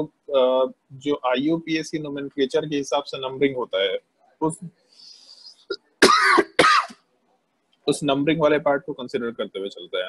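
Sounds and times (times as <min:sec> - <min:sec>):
person coughing: 0:06.0 - 0:07.0.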